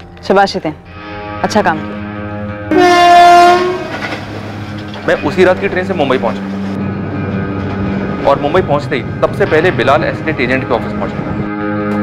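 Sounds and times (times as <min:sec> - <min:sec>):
train horn blast: 0:01.9 - 0:04.7.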